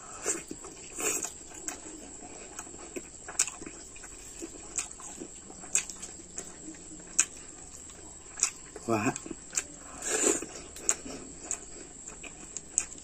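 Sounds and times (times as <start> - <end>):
man chewing and lip smacking: 0.1 - 13.0.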